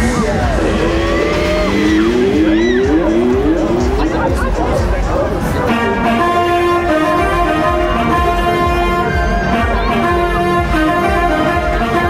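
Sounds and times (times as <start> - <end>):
riders screaming: 0.0 - 4.0, 7.5 - 11.8
fairground noise: 0.0 - 12.0
ride music with held notes: 0.0 - 12.0.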